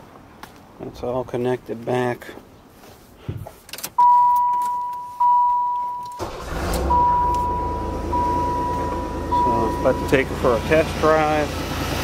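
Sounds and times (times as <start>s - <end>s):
dashboard warning chime dinging: 4.0s - 10.8s
car engine starting and idling: 5.2s - 12.0s.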